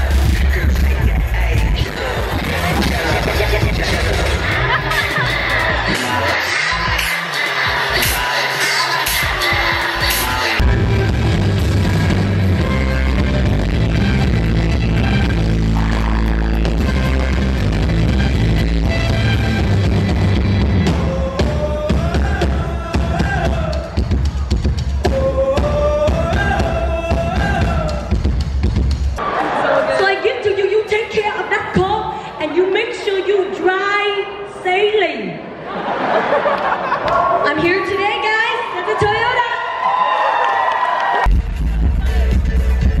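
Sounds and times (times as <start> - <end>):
person singing: 0.0 - 13.5, 20.7 - 24.3, 25.0 - 28.3
live band playing amplified: 0.0 - 29.7.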